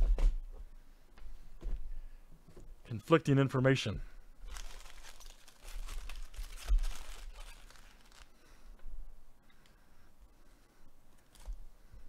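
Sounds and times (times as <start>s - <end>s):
plastic wrappers crinkling: 4.4s - 8.5s, 11.1s - 11.7s.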